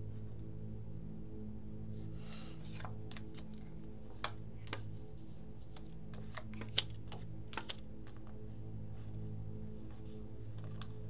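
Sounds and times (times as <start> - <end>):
soft background music: 0.0 - 11.0
playing cards being dealt: 2.2 - 8.4, 9.8 - 11.0.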